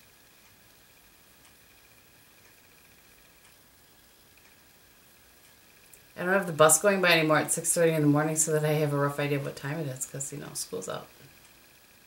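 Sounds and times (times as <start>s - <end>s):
faint ticks: 0.0s - 6.2s
faint high hum: 0.0s - 12.0s.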